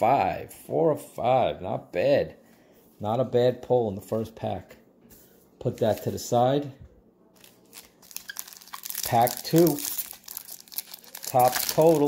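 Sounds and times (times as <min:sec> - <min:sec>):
foil wrapper crinkling: 0:07.4 - 0:12.0.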